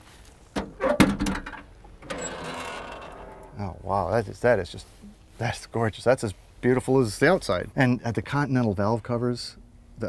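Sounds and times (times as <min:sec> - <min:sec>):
car hood hinges clunk: 0:00.6 - 0:01.7.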